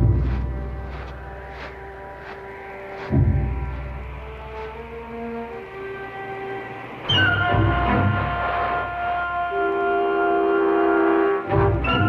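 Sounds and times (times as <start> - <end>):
low repeated beats: 0.0 - 9.7
film score music: 0.0 - 12.0.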